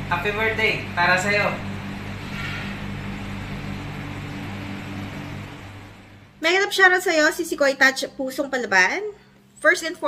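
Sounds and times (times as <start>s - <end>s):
kitchen machinery hum and hiss: 0.0s - 10.0s.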